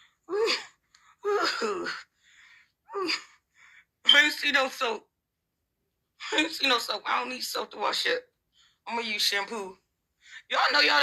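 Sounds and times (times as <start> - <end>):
soft breathing: 2.1 - 2.8.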